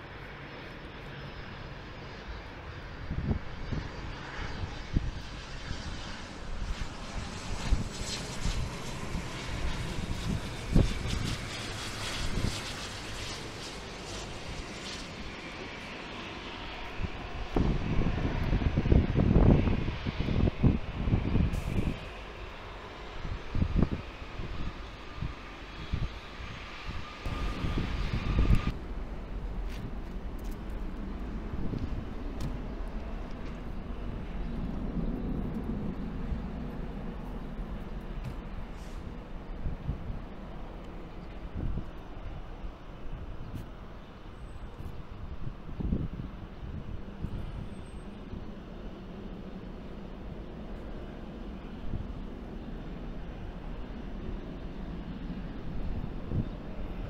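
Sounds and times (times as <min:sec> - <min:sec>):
jet engines whining: 0:00.0 - 0:57.0
wind buffeting microphone: 0:02.1 - 0:57.0.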